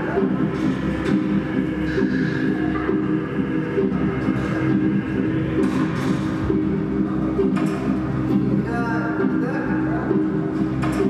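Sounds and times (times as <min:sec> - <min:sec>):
instrumental music with low notes: 0:00.0 - 0:11.0.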